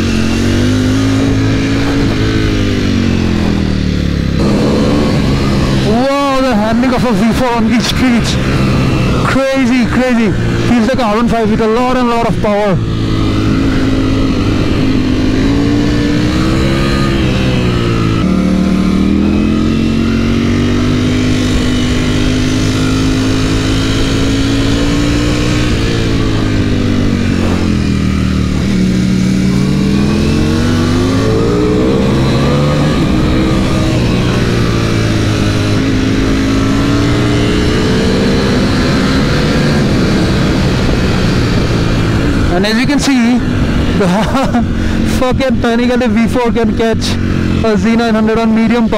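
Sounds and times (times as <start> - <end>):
motorcycle engine revving: 0.0 - 48.9
wind rush on microphone: 0.0 - 48.9.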